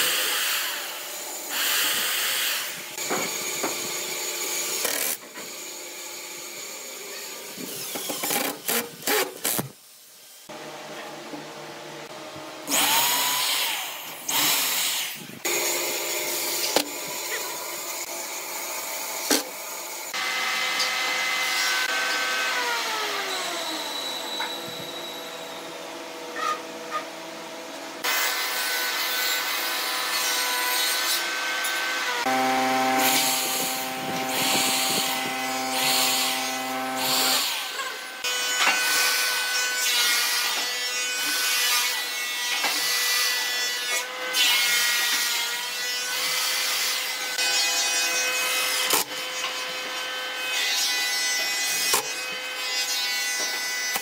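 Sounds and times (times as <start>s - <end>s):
cordless drill boring into wood: 12.7s - 15.7s, 31.2s - 38.2s.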